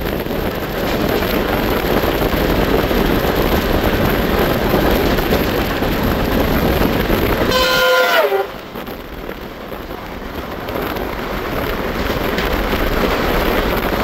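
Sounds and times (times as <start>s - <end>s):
train running noise and wind: 0.0s - 14.0s
locomotive air horn: 7.4s - 8.7s.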